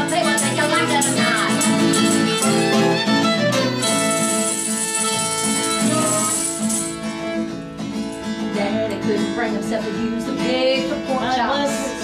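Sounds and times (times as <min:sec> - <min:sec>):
person singing: 0:00.0 - 0:02.4, 0:05.4 - 0:06.9, 0:08.5 - 0:12.0
tambourine shaking: 0:00.0 - 0:03.0, 0:03.7 - 0:07.2
fiddle: 0:00.0 - 0:12.0
strummed acoustic guitar: 0:00.0 - 0:12.0.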